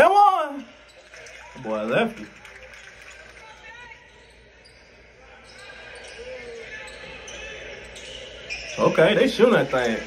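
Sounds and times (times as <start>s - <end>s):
faint echoing voices: 0.0s - 10.0s.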